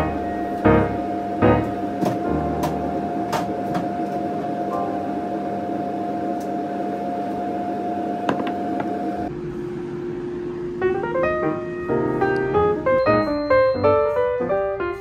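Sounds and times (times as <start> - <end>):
appliance humming: 0.0 - 15.0.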